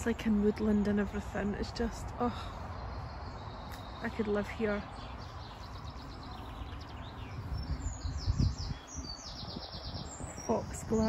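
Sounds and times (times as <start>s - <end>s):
songbirds chirping and trilling: 0.0s - 11.0s
steady low rumble: 0.0s - 11.0s.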